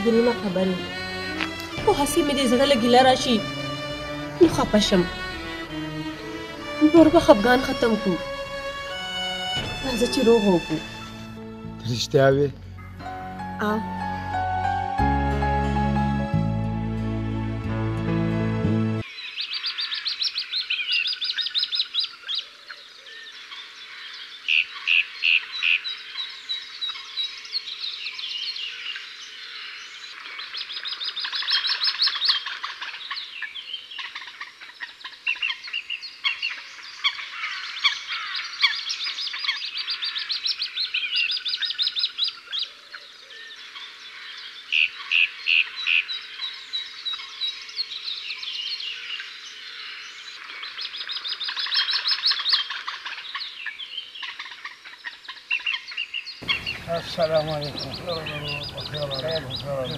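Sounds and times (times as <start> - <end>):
songbirds chirping and trilling: 0.0 - 15.5, 19.0 - 59.9.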